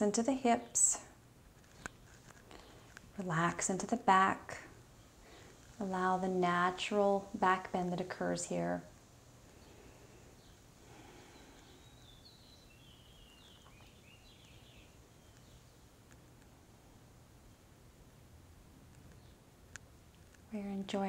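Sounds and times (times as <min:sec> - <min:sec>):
faint bird chirps: 0:09.5 - 0:16.0.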